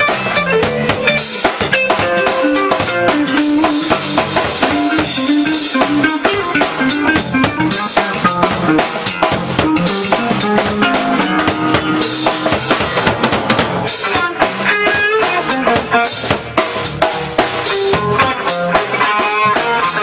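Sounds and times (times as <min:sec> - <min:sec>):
drum kit: 0:00.0 - 0:20.0
electric bass line: 0:00.0 - 0:20.0
electric guitar: 0:00.0 - 0:20.0.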